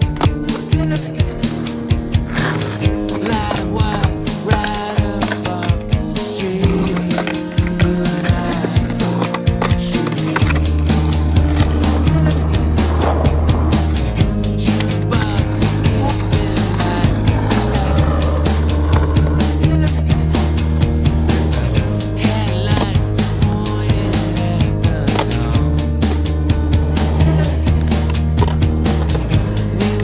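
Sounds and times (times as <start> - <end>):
music track: 0.0 - 30.0
skateboard clacking: 0.0 - 30.0
skateboard wheels rolling on concrete: 0.0 - 30.0.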